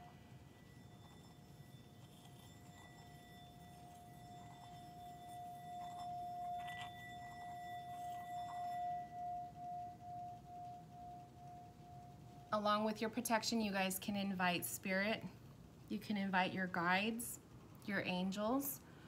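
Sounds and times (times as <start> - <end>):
singing bowl ringing tone: 0.0 - 13.8.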